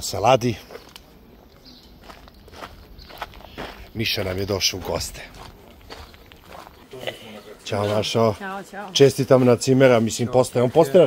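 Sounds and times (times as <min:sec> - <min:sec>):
footsteps on gravel path: 0:00.4 - 0:11.0.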